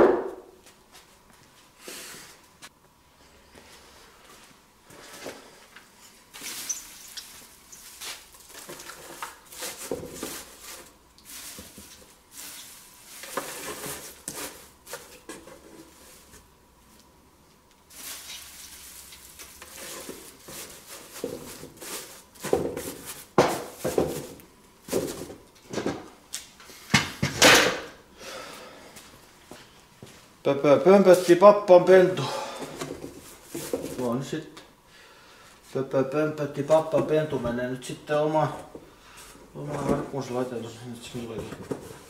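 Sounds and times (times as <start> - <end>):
wood shavings rustling: 6.3 - 16.4, 17.9 - 25.2.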